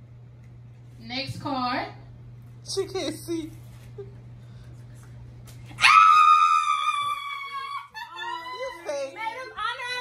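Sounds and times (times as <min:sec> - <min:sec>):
woman screaming excitedly: 0:05.8 - 0:08.9.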